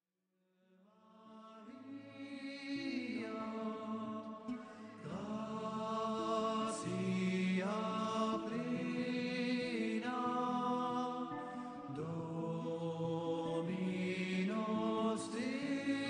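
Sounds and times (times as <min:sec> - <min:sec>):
slow chant-like singing: 0:01.0 - 0:16.0.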